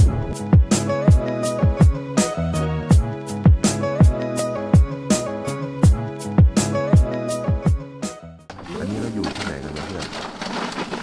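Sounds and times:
man speaking: 8.6s - 10.1s.

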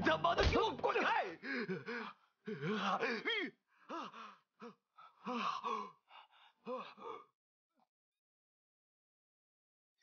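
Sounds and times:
man groaning and sobbing: 1.1s - 7.4s.

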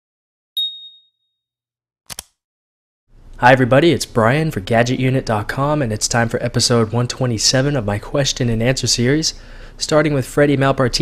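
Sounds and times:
bright electronic ding: 0.6s - 1.2s.

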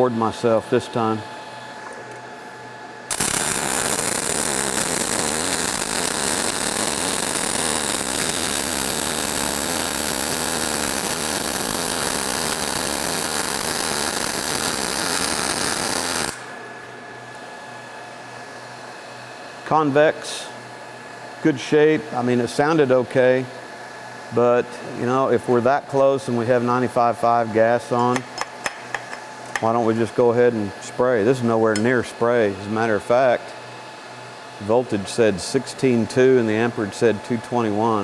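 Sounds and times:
welding arc buzzing: 1.8s - 17.6s.

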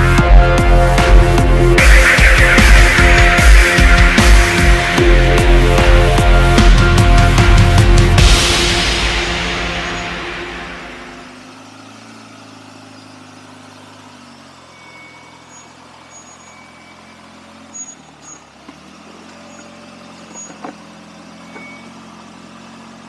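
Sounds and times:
engine running at low revs: 0.0s - 23.0s.

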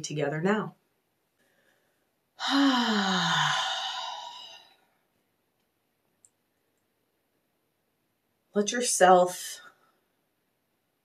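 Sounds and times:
woman sighing: 2.4s - 4.8s.

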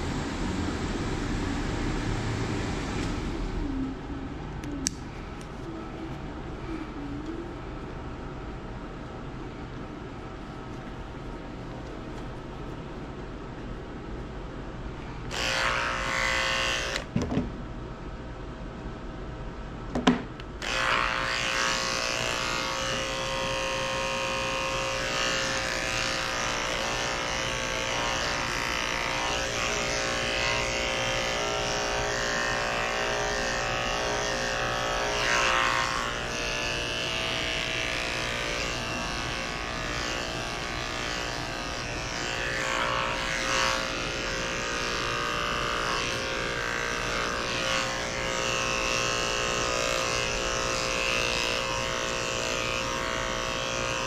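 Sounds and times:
electric clippers buzzing: 15.1s - 17.1s, 20.5s - 54.0s.

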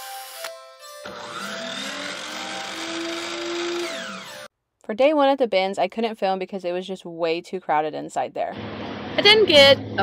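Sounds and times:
whirring tool-like sound effect: 0.0s - 4.5s.

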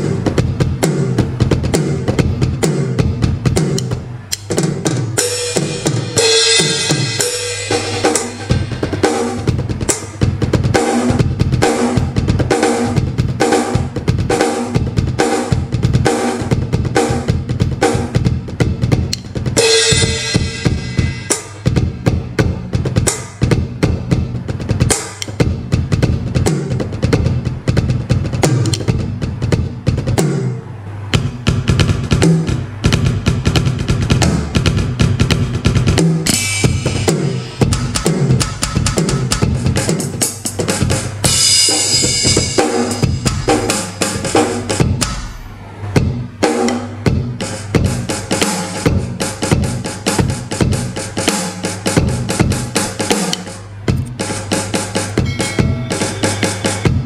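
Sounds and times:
electronic drum pattern: 0.0s - 57.0s.

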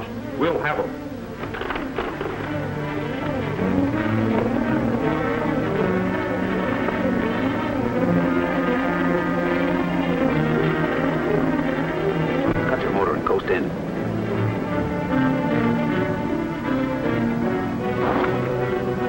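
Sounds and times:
dramatic orchestral music: 0.0s - 19.0s.

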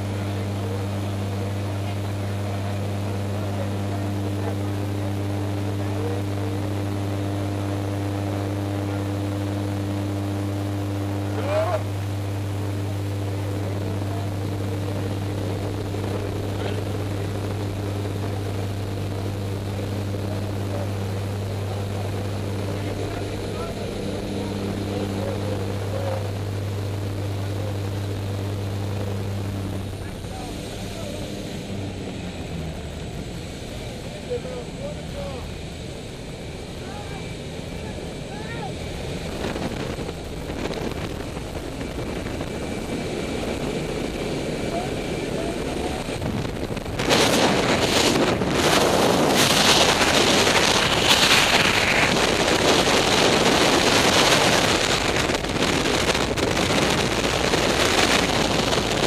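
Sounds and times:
propeller plane engine drone: 0.0s - 59.0s.

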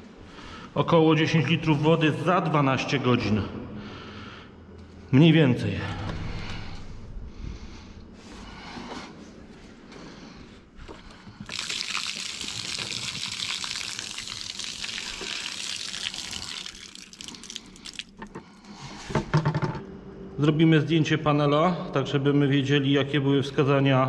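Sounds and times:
water pouring and splashing: 11.4s - 18.3s.

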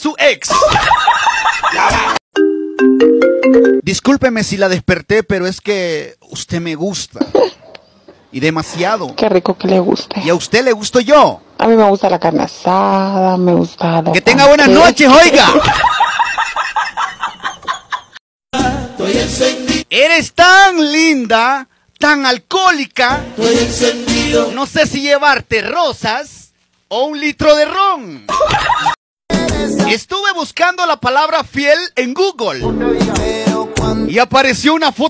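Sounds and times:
cartoon character cackling: 0.5s - 2.2s
fast cackling laugh: 0.5s - 2.2s, 7.2s - 7.7s, 15.4s - 18.2s, 28.3s - 29.0s
chiming bell melody: 2.4s - 3.8s
music: 2.4s - 3.8s, 18.6s - 19.9s, 23.1s - 24.6s, 29.3s - 30.0s, 32.6s - 34.1s.

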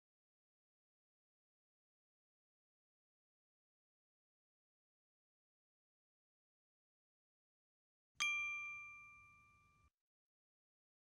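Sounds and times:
bright bell-like chime: 8.2s - 10.0s.

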